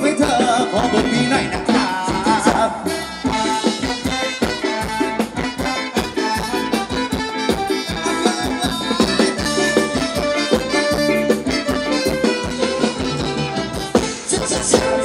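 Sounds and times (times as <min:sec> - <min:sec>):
steady drum beat: 0:00.0 - 0:15.0
held melody tones: 0:03.2 - 0:15.0.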